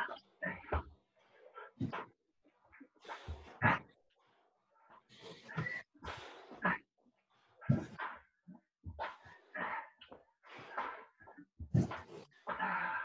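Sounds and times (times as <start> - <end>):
people breathing heavily: 3.0 - 3.8, 5.1 - 8.2, 8.9 - 13.0.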